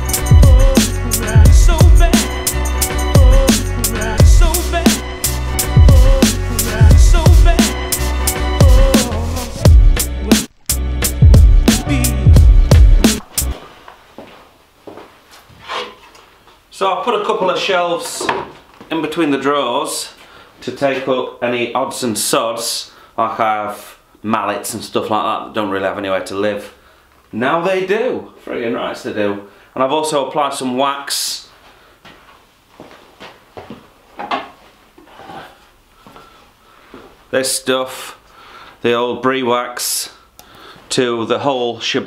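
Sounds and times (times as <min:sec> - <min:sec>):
faint footsteps: 0:12.4 - 0:16.7, 0:17.5 - 0:19.4, 0:31.5 - 0:37.4
scuff or handling noise: 0:13.1 - 0:16.6, 0:32.0 - 0:35.5.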